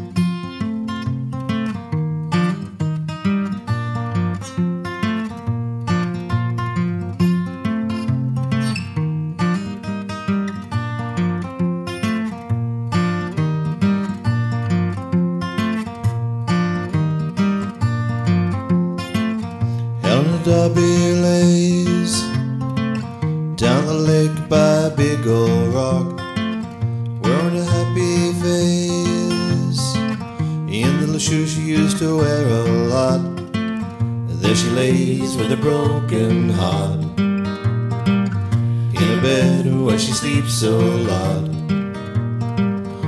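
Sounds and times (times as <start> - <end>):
acoustic guitar strumming: 0.0 - 43.0.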